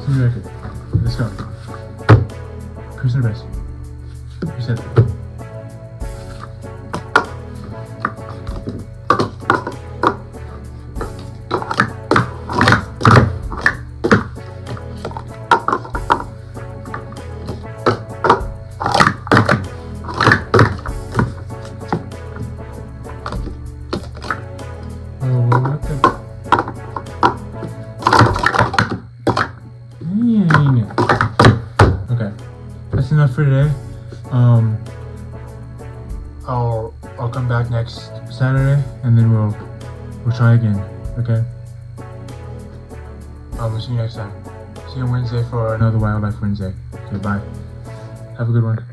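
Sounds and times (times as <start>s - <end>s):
background music: 0.0s - 48.9s
plastic cups clacking: 8.0s - 10.3s, 11.0s - 16.3s, 16.9s - 22.1s, 23.2s - 24.4s, 25.3s - 27.4s, 28.0s - 29.6s, 30.4s - 32.1s.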